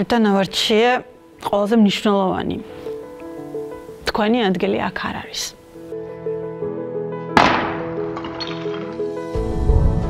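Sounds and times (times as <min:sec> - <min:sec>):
soft background music: 0:00.0 - 0:10.0
plaster ball smashing: 0:07.4 - 0:09.1.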